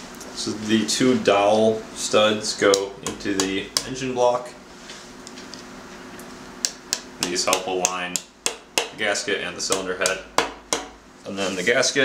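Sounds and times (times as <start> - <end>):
faint steady hum: 0.0 - 12.0
mallet tapping metal: 6.7 - 9.0, 9.7 - 11.0.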